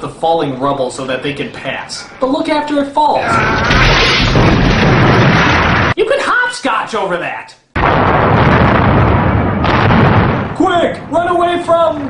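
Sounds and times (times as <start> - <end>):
large explosion: 3.3 - 6.0, 7.8 - 11.2.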